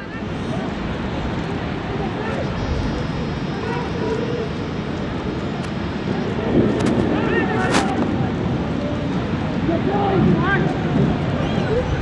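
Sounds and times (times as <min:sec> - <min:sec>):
steady rumbling noise: 0:00.0 - 0:12.0
players shouting: 0:01.4 - 0:05.4.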